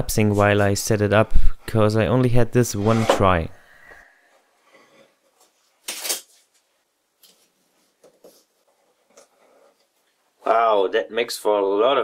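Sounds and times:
scrape on wood: 2.6s - 3.5s.

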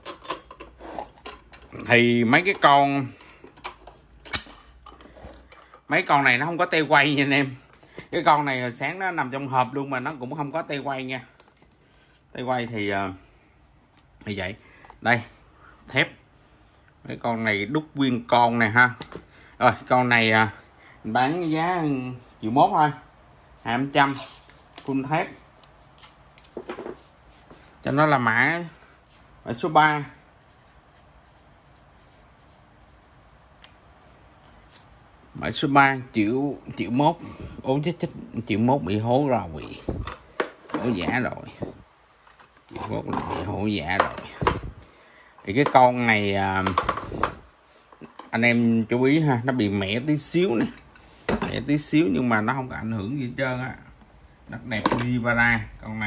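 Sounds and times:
metal vise clinking: 0.0s - 5.9s.

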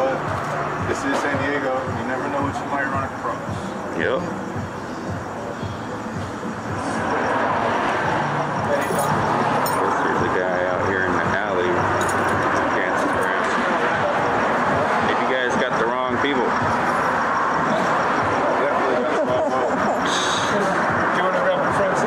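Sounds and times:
indistinct voices: 0.0s - 22.0s
loud background noise with hum: 0.0s - 22.0s.

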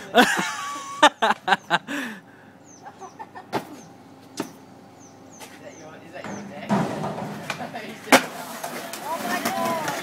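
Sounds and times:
person laughing: 0.0s - 2.2s, 2.8s - 3.6s.

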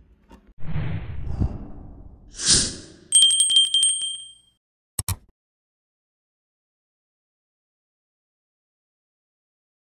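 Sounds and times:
bell trilling: 3.1s - 4.5s.

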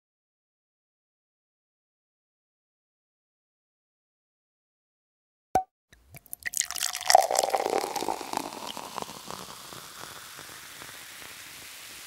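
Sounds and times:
liquid pouring from a bottle: 6.1s - 12.0s.

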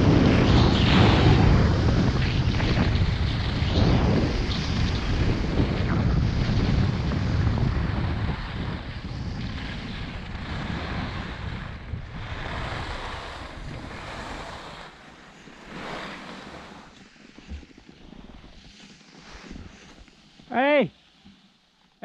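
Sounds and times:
wind rushing over microphone: 0.0s - 20.1s
skis hissing on snow: 12.8s - 17.4s, 18.0s - 21.2s.

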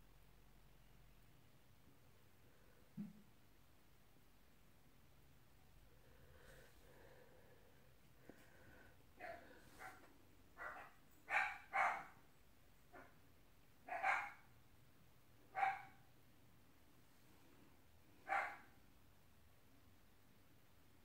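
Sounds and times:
dog barking: 9.2s - 10.0s, 10.6s - 12.2s, 13.8s - 14.5s, 15.5s - 16.1s, 18.2s - 18.7s.

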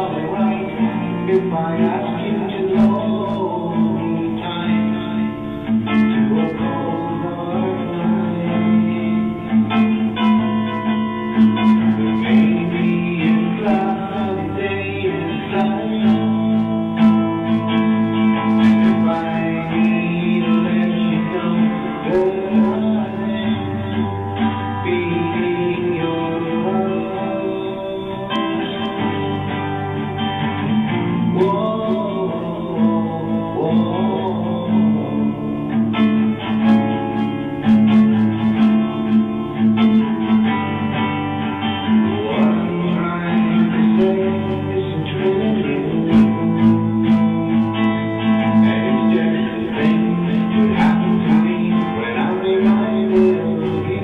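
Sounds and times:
acoustic guitar: 0.0s - 54.0s
man singing: 0.0s - 54.0s.

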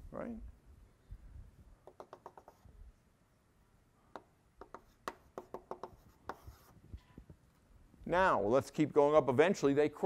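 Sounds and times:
chalk tapping on a blackboard: 1.8s - 2.7s, 4.1s - 6.8s.

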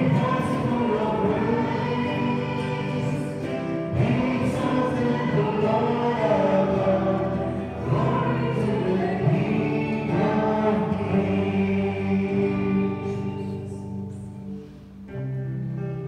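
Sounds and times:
church choir singing a hymn: 0.0s - 14.4s.

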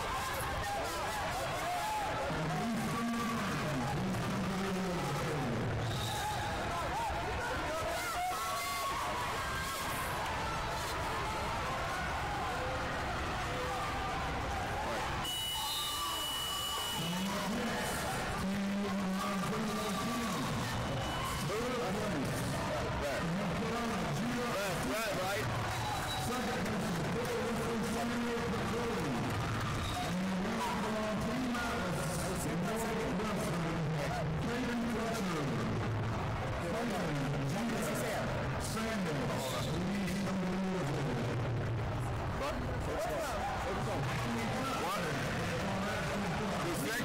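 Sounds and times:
hubbub of many voices: 0.0s - 47.0s.

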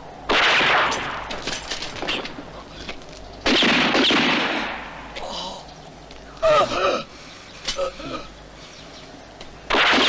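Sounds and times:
rifle shot with echo: 0.3s - 1.4s, 3.4s - 5.1s, 9.7s - 10.0s.

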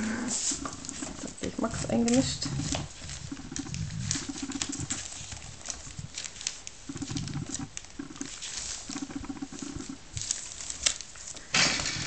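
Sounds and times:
paws scrabbling on blanket: 0.3s - 11.4s.

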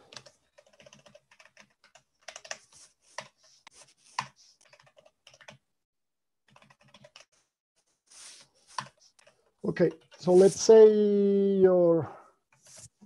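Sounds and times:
computer keyboard typing: 0.0s - 3.4s, 4.1s - 5.6s, 6.4s - 7.3s.

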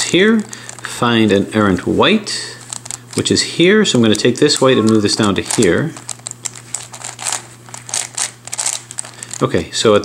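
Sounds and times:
puzzle cube clicking and rattling: 4.0s - 9.5s.

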